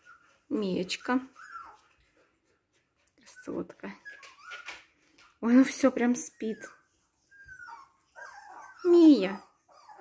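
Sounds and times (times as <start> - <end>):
puppy squeaking softly: 0.0 - 10.0
puppy whimpering: 0.0 - 10.0.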